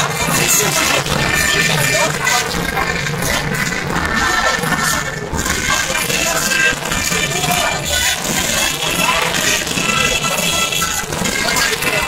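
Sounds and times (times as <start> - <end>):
crowd chattering: 0.0 - 12.0
folk music with high piping: 0.0 - 12.0.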